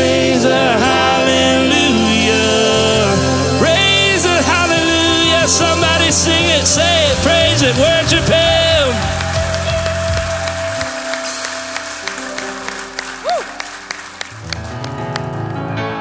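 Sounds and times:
soft keyboard chords: 0.0s - 16.0s
sustained keyboard chord: 0.0s - 16.0s
hand-clapping: 7.3s - 15.3s.

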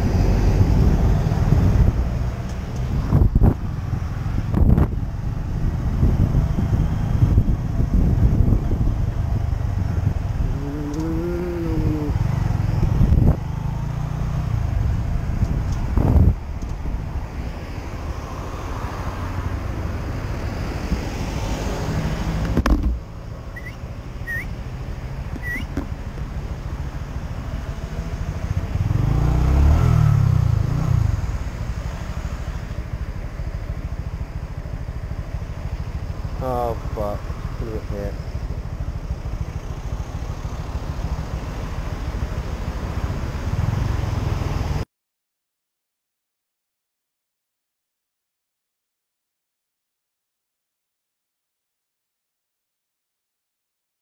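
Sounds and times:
wind rumble on microphone: 0.0s - 18.6s
motorcycle engine running: 0.6s - 17.2s, 22.4s - 44.8s
faint chirps: 23.6s - 24.5s, 25.4s - 25.8s.

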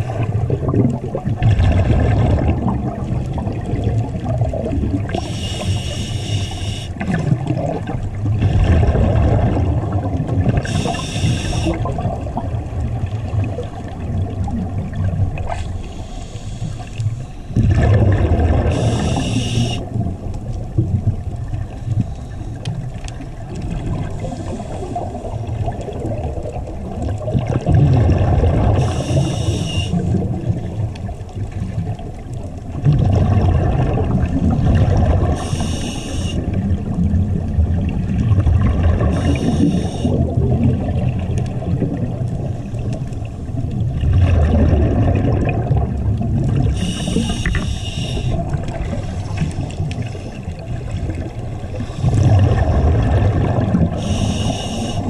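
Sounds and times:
gurgling exhaled bubbles: 0.0s - 55.0s
regulator hissing inhales: 5.2s - 7.0s, 10.6s - 11.8s, 15.6s - 17.6s, 18.7s - 19.8s, 28.8s - 30.1s, 35.4s - 36.4s, 39.1s - 40.2s, 46.7s - 48.4s, 51.8s - 52.2s, 54.0s - 55.0s.

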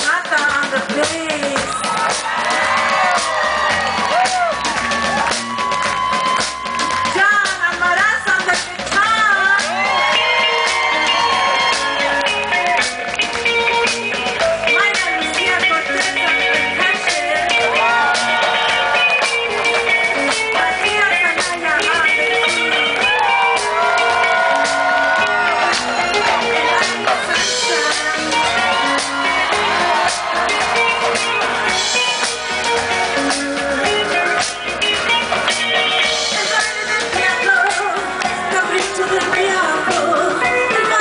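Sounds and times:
drum kit: 0.0s - 41.0s
electric guitar: 0.0s - 41.0s
live rock band playing: 0.0s - 41.0s
electric bass: 0.7s - 41.0s
people shouting and whooping: 1.6s - 7.5s, 9.2s - 13.4s, 16.8s - 20.9s, 22.3s - 34.4s.

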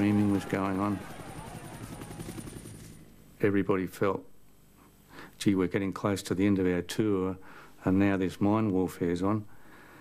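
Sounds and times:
helicopter rotor beating: 0.0s - 3.0s.

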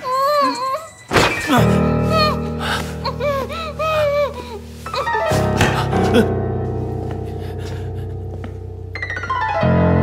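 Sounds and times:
low sustained music chord: 1.7s - 9.0s.

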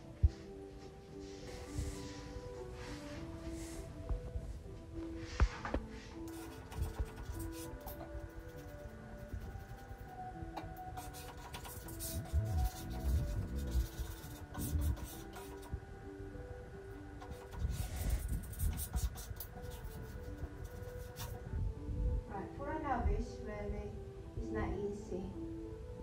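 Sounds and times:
background music melody: 0.0s - 26.0s.

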